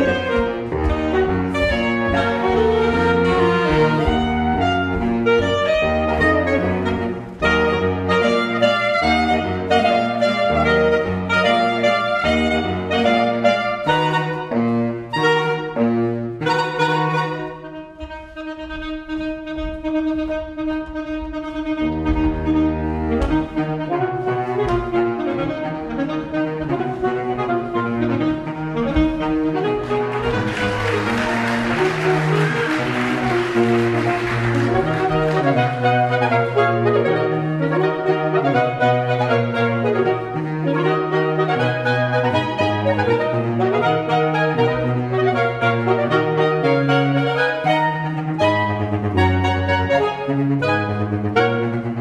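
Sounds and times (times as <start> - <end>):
saxophones playing in harmony: 0.0 - 52.0.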